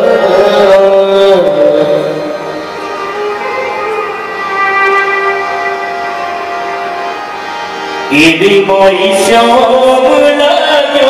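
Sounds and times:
harmonium melody: 0.0 - 11.0.

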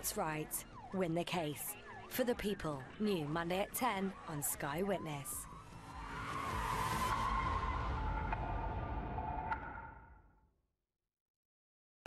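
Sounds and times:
car tyres screeching: 5.8 - 9.6.

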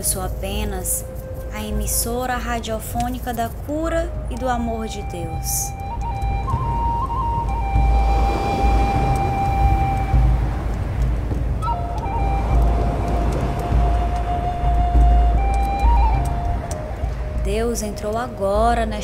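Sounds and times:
slow ambient music: 0.0 - 19.0
deep rumble: 5.2 - 19.0
ocean surf rushing: 5.7 - 18.4.

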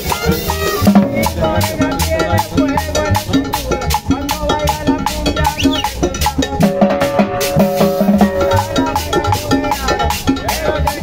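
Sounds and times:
band playing dance beat: 0.0 - 11.0
congas: 0.0 - 11.0
upright bass notes: 0.0 - 11.0.

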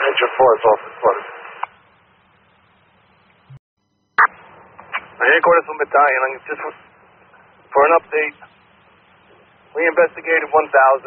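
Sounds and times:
radio voice transmission: 0.0 - 1.7, 4.2 - 8.6, 9.2 - 11.0
radio static hiss: 0.0 - 3.6, 4.2 - 11.0
radio squelch click: 1.6 - 1.8.

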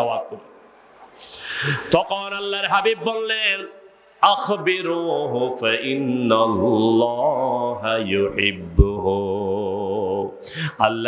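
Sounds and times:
man chanting through microphone: 1.6 - 11.0.

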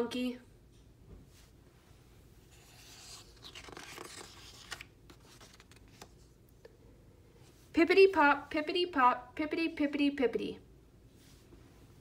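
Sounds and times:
book page turning: 2.5 - 6.4.

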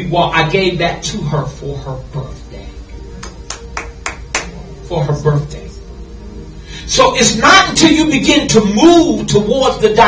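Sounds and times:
person clapping hands: 3.2 - 4.6.

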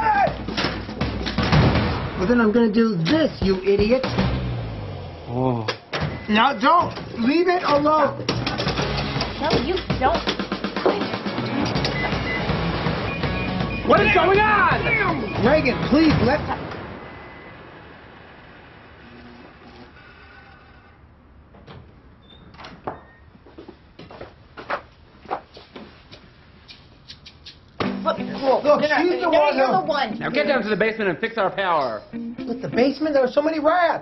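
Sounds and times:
background music: 0.0 - 5.2, 7.8 - 16.6, 27.8 - 31.2, 32.0 - 34.0
electric fans whirring: 6.4 - 22.1
short high beeps: 11.9 - 15.7.

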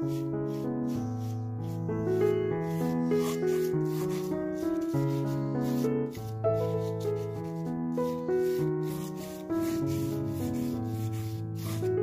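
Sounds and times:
paintbrush rubbing on canvas: 0.0 - 12.0
soft background music: 0.0 - 12.0.

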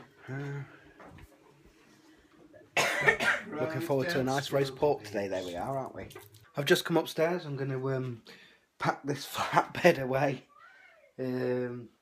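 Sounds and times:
person coughing loudly: 2.8 - 3.6.

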